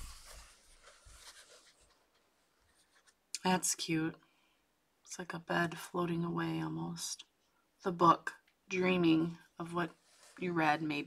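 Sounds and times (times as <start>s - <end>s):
paper pages rustling: 0.0s - 3.2s.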